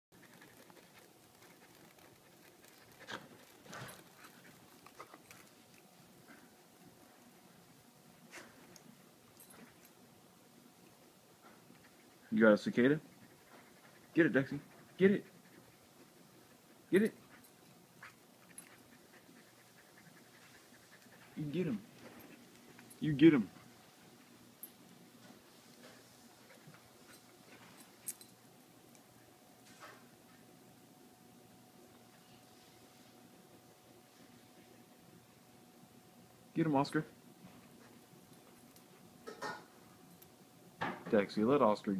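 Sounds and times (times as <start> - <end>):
dog panting: 0.2 - 6.6, 10.9 - 28.4.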